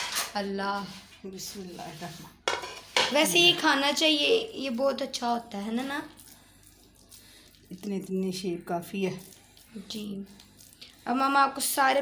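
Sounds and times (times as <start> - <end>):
faint stirring scrape: 0.0 - 12.0.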